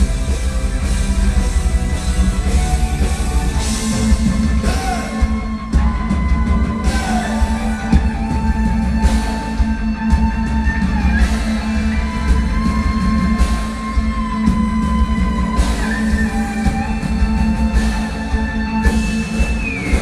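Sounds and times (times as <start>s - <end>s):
drums: 0.0s - 20.0s
guitars: 0.0s - 20.0s
held lead melody line: 0.0s - 20.0s.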